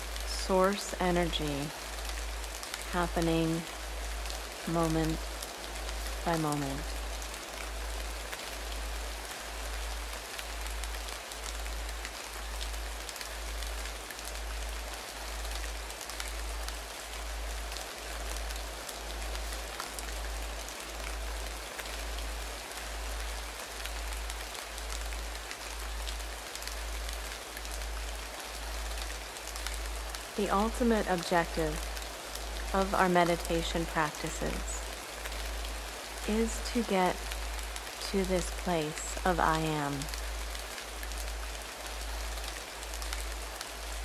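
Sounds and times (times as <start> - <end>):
rain-like hiss with patter: 0.0 - 44.0.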